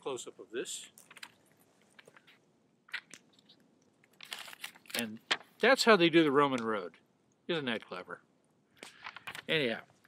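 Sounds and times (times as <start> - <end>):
paper crinkling and clicking: 1.0 - 5.5, 8.8 - 9.6.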